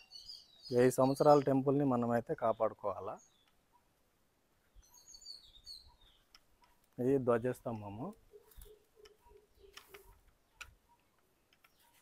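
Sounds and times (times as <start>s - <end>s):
faint clicks: 6.2s - 7.0s, 7.7s - 11.8s.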